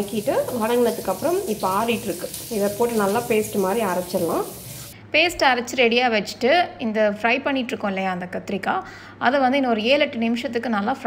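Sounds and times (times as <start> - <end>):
cooking sizzle: 0.0 - 5.0
woman talking: 0.0 - 11.0.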